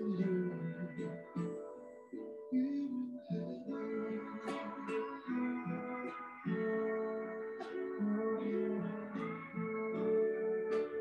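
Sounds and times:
plucked string instrumental music: 0.0s - 11.0s.

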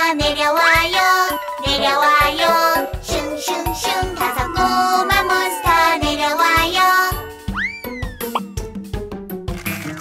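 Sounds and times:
children's song with singing: 0.0s - 7.8s.

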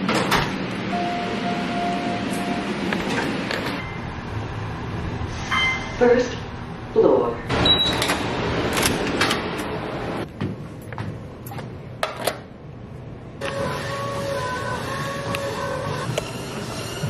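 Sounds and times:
cardio machine electric whine: 0.0s - 4.9s, 13.4s - 17.0s.

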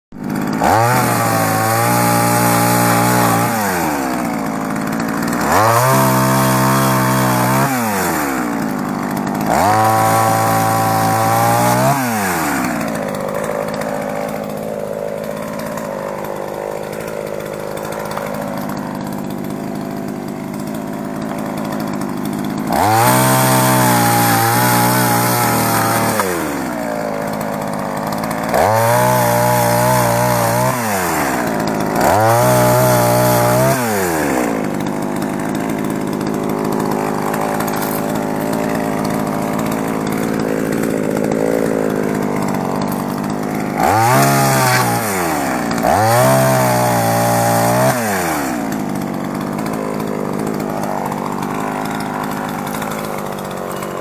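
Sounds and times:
chainsaw revving and idling: 0.1s - 54.0s.

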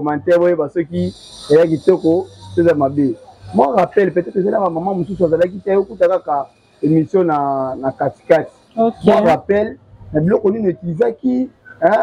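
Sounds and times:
crickets chirring: 0.0s - 12.0s
woman speaking: 8.9s - 9.4s.

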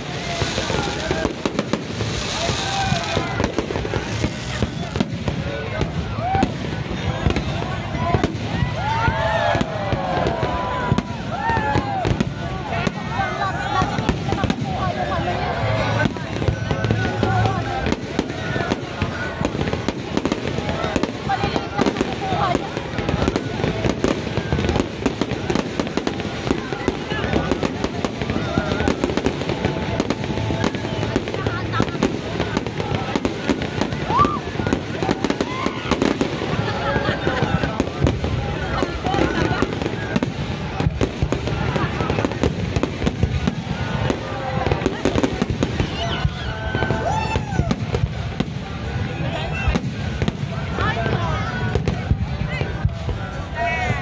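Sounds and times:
fireworks banging: 0.0s - 54.0s
people's voices: 0.0s - 54.0s.

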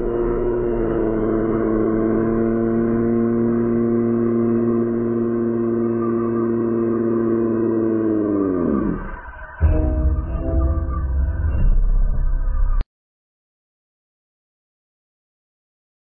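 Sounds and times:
steady droning tone: 0.0s - 12.8s.

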